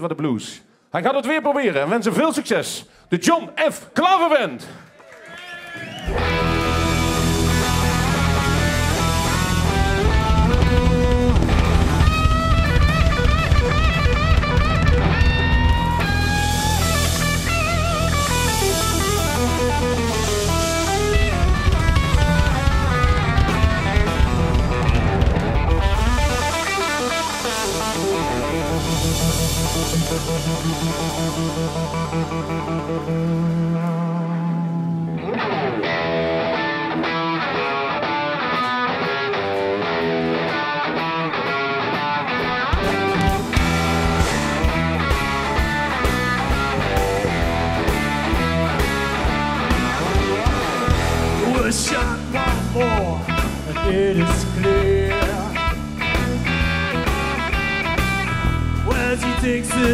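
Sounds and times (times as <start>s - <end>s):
drums: 5.8s - 59.9s
electric guitar: 5.8s - 59.9s
bass guitar: 6.0s - 59.9s.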